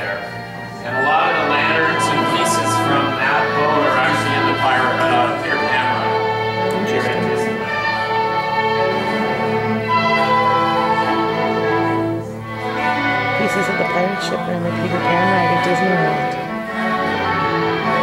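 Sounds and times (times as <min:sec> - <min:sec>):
orchestral film music with strings: 0:00.0 - 0:18.0.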